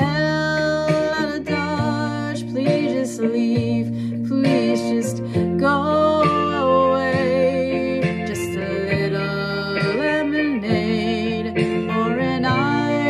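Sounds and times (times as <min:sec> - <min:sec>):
acoustic guitar: 0:00.0 - 0:13.0
woman singing with vibrato: 0:00.0 - 0:13.0.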